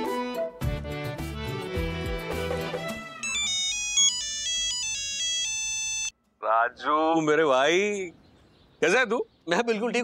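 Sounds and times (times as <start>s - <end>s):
background music: 0.0s - 6.1s
mobile phone ringtone: 3.2s - 6.2s.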